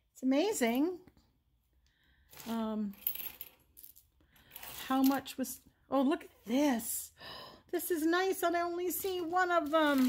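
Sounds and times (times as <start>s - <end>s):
metal jewelry clinking: 2.3s - 5.5s.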